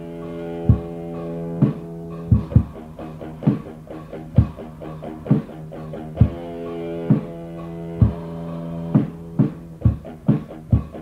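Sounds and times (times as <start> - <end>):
electric guitar chord: 0.0 - 9.7
drum hits: 0.7 - 1.0, 1.6 - 3.7, 6.2 - 6.5, 8.0 - 8.3, 9.0 - 11.0.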